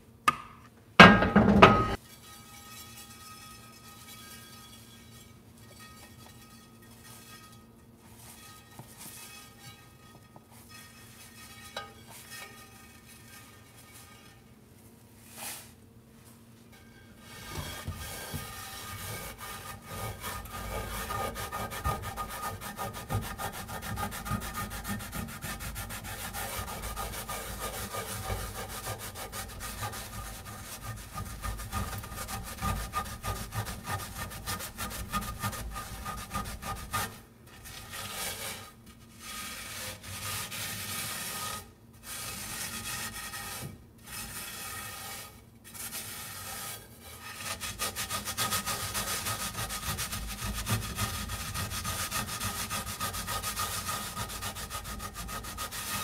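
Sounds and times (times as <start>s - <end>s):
salt scraping in skillet: 15.2s - 15.8s, 17.2s - 56.0s.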